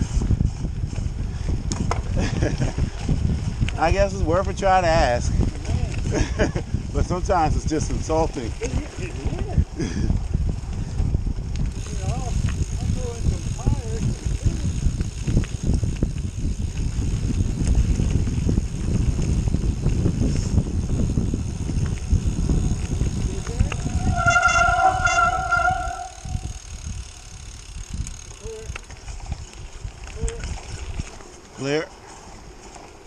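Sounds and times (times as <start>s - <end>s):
bike tyres rumbling over dirt: 0.0s - 33.0s
wind rush on camera: 0.0s - 33.0s
high squeal: 23.8s - 26.5s.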